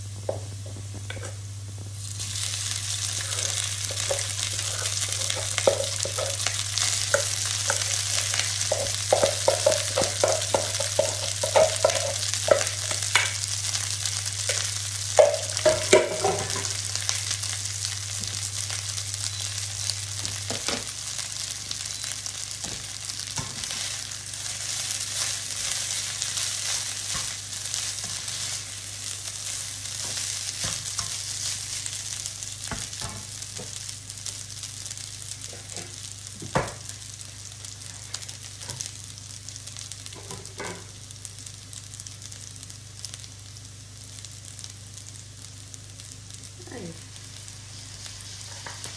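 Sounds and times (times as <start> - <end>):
garlic sizzling in a frying pan: 0.0 - 48.9
low steady hum: 0.0 - 48.9
utensil scraping and knocking pot: 8.7 - 13.3.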